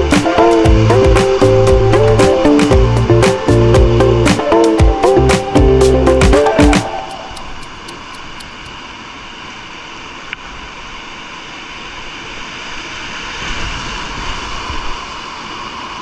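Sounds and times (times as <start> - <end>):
whitewater rushing: 0.0 - 9.7
faint tick: 7.1 - 8.8.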